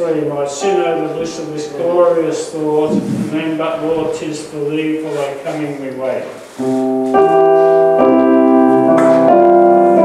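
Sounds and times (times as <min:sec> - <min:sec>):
man speaking: 0:00.0 - 0:06.3.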